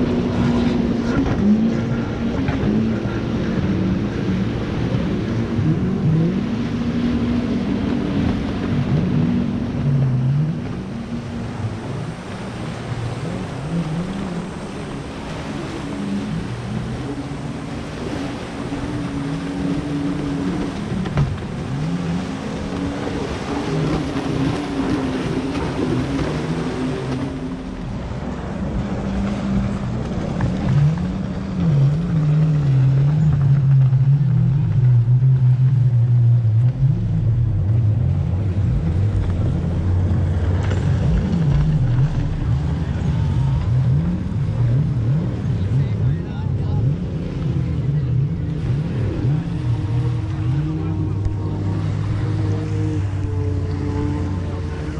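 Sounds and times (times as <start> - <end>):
jet ski engines droning: 0.0 - 54.9
surf: 0.0 - 54.9
wind: 0.0 - 54.9.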